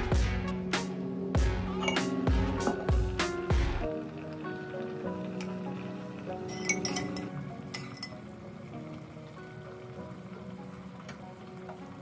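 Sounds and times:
background music with beat: 0:00.0 - 0:03.9
metal spoon clinking clay pot: 0:01.7 - 0:03.0, 0:06.4 - 0:08.2.

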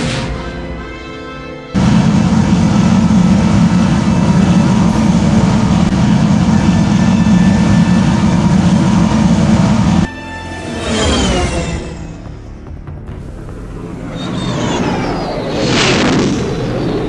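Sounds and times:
vehicle engine roar: 0:01.8 - 0:17.0.

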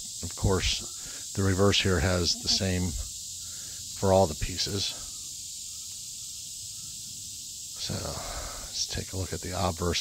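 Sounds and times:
high hiss: 0:00.0 - 0:10.0
man's voice: 0:01.4 - 0:03.0.

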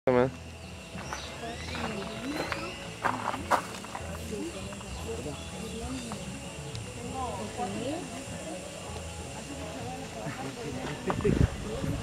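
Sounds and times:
voices talking in background: 0:00.1 - 0:12.0.

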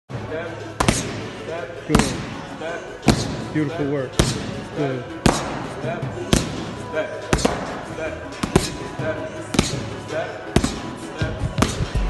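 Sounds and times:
boxing gloves hitting punch pads: 0:00.8 - 0:01.2, 0:03.0 - 0:03.4, 0:04.1 - 0:04.5, 0:05.2 - 0:05.7, 0:06.3 - 0:07.8, 0:08.4 - 0:08.8, 0:09.5 - 0:09.9, 0:10.5 - 0:10.9, 0:11.5 - 0:12.0.

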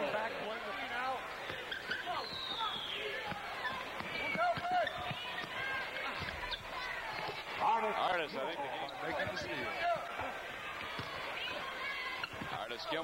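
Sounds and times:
arena crowd noise: 0:00.0 - 0:13.0
voices: 0:00.0 - 0:13.0
basketball bouncing on hardwood: 0:03.2 - 0:06.4.

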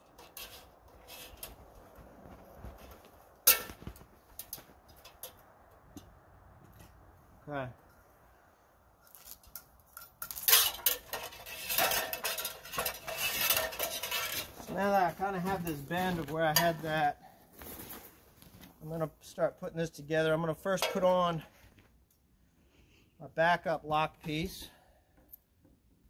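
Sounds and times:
metal clinking and rattling: 0:09.1 - 0:16.8.

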